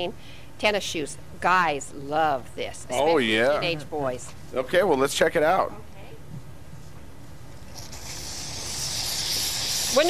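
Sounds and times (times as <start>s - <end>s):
steam cleaner hissing: 7.8s - 10.0s.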